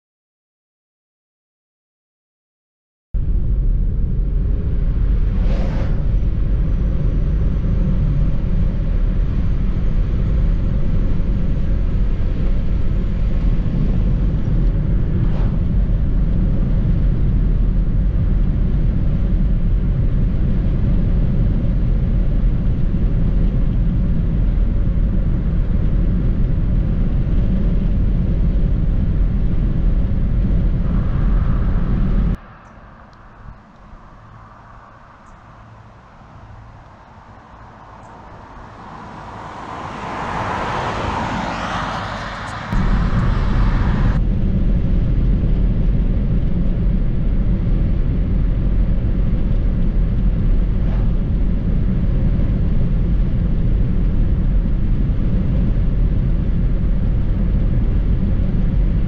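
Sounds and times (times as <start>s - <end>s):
car road and engine noise: 3.2s - 59.0s
vehicle passing whoosh: 4.8s - 7.9s, 12.4s - 16.4s, 30.0s - 44.2s, 50.6s - 52.2s
quiet outdoor background: 27.6s - 41.4s.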